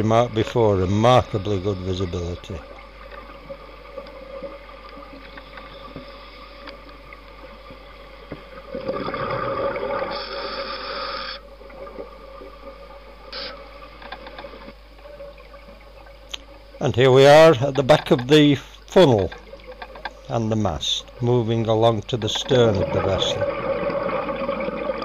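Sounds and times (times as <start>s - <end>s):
scuba exhaust bubbles rushing: 0.0s - 13.9s, 22.4s - 25.0s
underwater hum: 0.0s - 25.0s.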